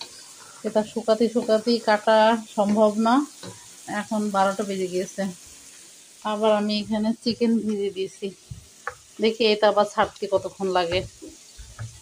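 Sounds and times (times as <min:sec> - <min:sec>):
food sizzling and bubbling in pot: 0:00.0 - 0:12.0
woman speaking: 0:00.7 - 0:03.3, 0:03.9 - 0:05.4, 0:06.3 - 0:08.4, 0:09.2 - 0:11.1
wooden spoon stirring: 0:06.6 - 0:12.0.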